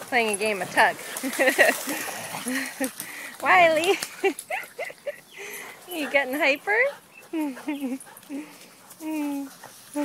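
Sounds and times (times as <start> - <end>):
person laughing: 4.1 - 5.3.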